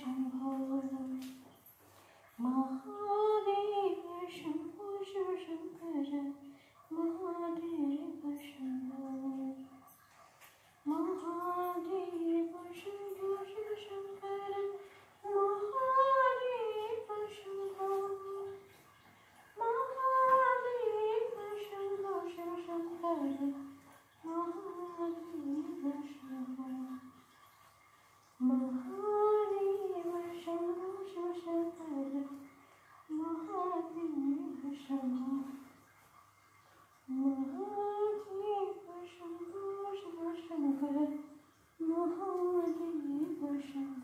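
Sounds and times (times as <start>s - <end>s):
woman singing unaccompanied: 0.0s - 1.5s, 2.4s - 9.7s, 10.8s - 18.7s, 19.6s - 27.1s, 28.4s - 35.7s, 37.1s - 44.0s.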